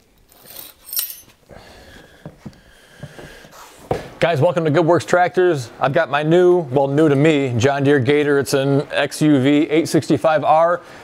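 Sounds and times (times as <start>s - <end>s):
light metallic clink: 0.3s - 1.4s.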